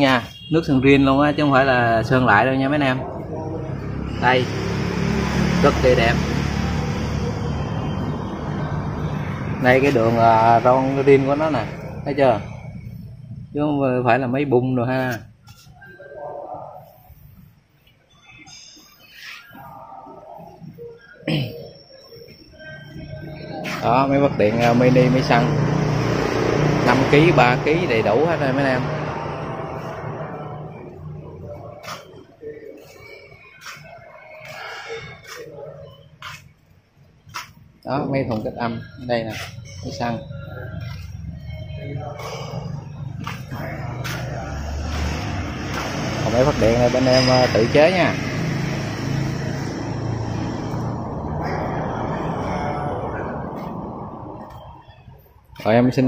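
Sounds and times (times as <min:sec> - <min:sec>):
distant voices: 0:00.0 - 0:56.0.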